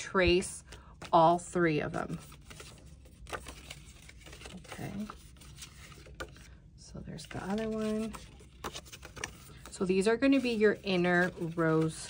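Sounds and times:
cardstock rustling and crinkling: 0.2 - 12.0.

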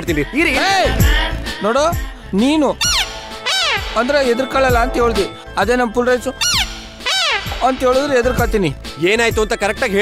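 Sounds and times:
background music: 0.0 - 10.0
man speaking animatedly: 3.8 - 6.6.

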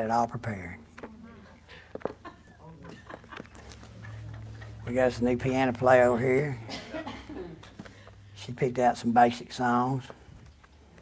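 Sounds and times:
low hum: 3.5 - 8.5.

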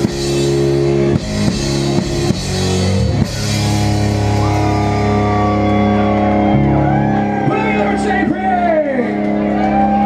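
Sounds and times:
rock band chord ringing: 0.0 - 8.1.

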